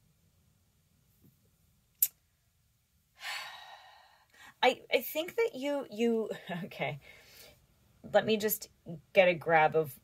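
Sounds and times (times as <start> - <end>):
woman sighing: 3.2 - 4.5.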